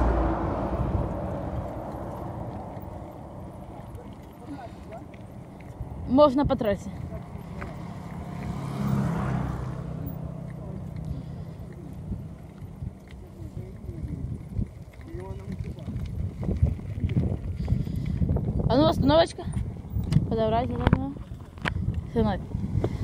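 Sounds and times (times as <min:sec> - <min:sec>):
bicycle tyres on dirt track: 0:00.0 - 0:23.0
wind rumbling on microphone: 0:00.0 - 0:23.0.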